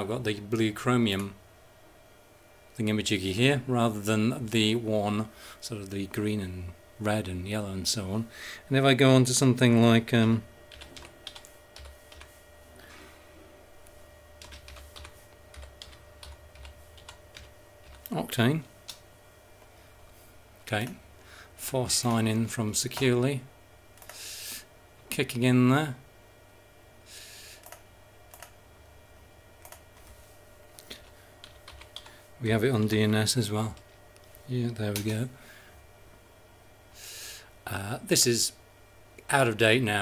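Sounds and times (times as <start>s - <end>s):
faint electrical hum: 0.0s - 40.0s
typing on computer keyboard: 10.7s - 12.3s, 14.4s - 18.1s, 31.0s - 32.1s.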